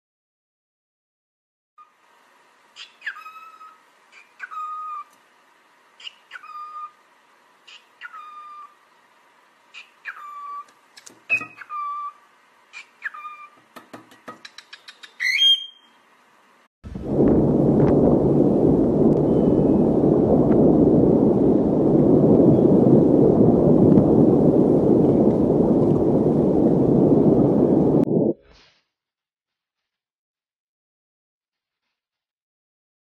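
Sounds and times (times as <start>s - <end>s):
cockatiel whistling: 2.8s - 5.1s, 6.0s - 7.0s, 7.7s - 8.7s, 9.8s - 10.7s, 11.3s - 12.2s, 12.8s - 13.6s, 14.7s - 16.0s
wind on microphone: 16.9s - 28.4s.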